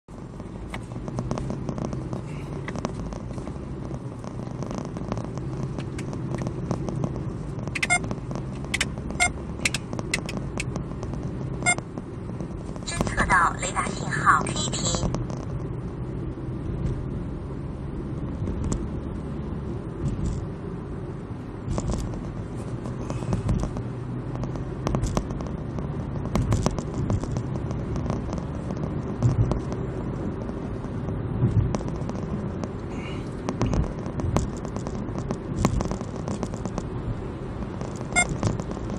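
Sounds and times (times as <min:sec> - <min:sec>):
car engine and tyres drone: 0:00.1 - 0:38.9
small clicks and knocks: 0:00.4 - 0:12.9, 0:15.0 - 0:15.8, 0:21.7 - 0:37.0, 0:37.6 - 0:38.9
sharp clicks: 0:00.7 - 0:13.2.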